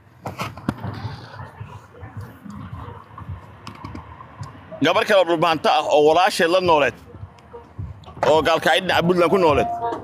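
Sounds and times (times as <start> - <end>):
man speaking: 8.2 - 9.8.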